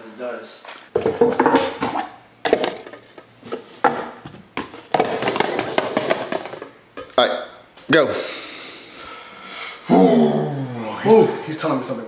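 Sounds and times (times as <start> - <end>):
man groaning: 9.8 - 11.4.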